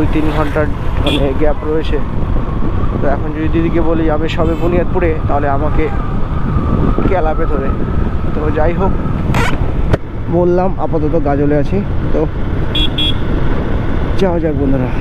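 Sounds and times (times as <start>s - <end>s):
road and wind noise: 0.0s - 15.0s.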